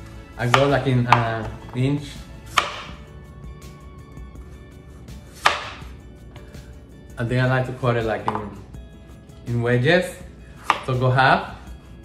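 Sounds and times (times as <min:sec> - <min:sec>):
knife slicing squash: 0:00.4 - 0:03.0, 0:05.1 - 0:06.0, 0:10.6 - 0:11.0
knife knocking on cutting board: 0:08.3 - 0:08.5.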